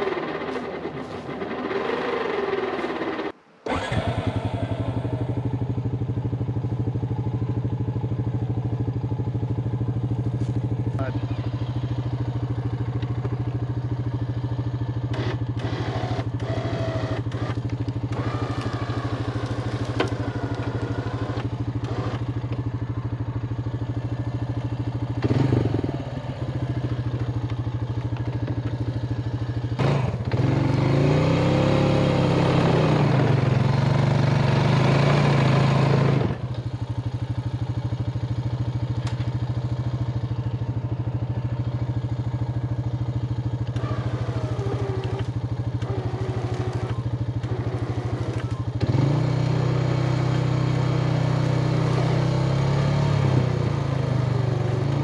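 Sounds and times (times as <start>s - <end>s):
quad engine idling and revving: 0.0s - 55.0s.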